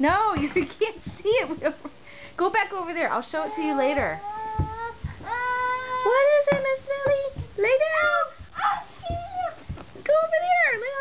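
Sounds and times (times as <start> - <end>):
hands and knees thumping floor: 0.0 - 1.8, 3.6 - 11.0.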